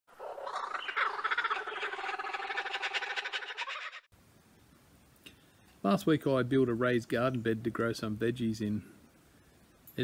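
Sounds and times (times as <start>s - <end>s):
animal calling in a rapid trill: 0.1s - 4.1s.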